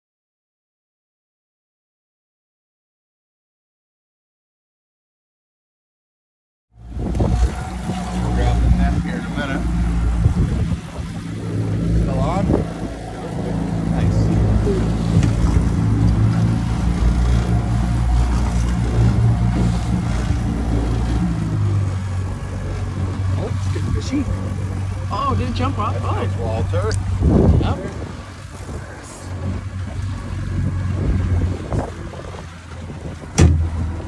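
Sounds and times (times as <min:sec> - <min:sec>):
outboard motor running: 0:06.8 - 0:34.0.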